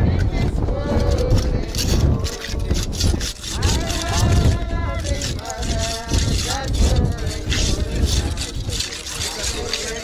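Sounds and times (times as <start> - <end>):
wind rumbling on microphone: 0.0 - 10.0
hand tool scraping concrete: 0.2 - 10.0.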